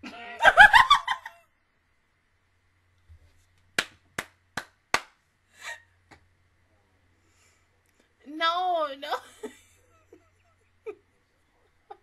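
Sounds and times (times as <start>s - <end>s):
hand claps: 3.8s - 5.2s.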